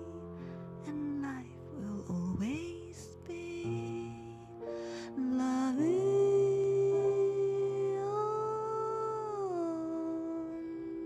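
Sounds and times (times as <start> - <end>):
piano chord: 0.0 - 11.0
woman singing a long note: 0.9 - 11.0.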